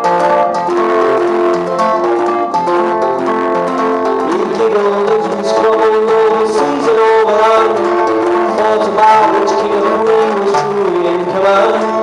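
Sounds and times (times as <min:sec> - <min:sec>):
acoustic guitar: 0:00.0 - 0:12.0
person singing long notes: 0:00.0 - 0:12.0.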